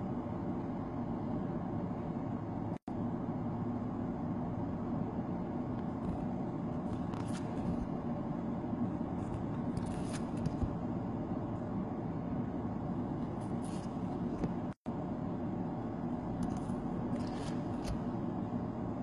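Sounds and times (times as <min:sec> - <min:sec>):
trading cards rustling: 0:06.8 - 0:08.0, 0:09.3 - 0:10.7, 0:16.4 - 0:18.0.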